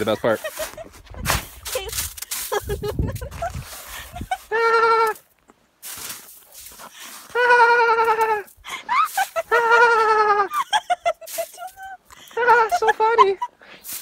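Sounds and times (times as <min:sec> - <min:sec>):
woman's high-pitched laughter: 0:00.4 - 0:05.2, 0:07.2 - 0:13.6.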